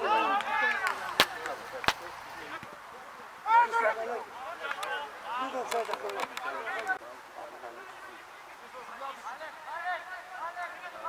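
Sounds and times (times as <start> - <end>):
people shouting: 0.0 - 1.2, 3.4 - 5.4.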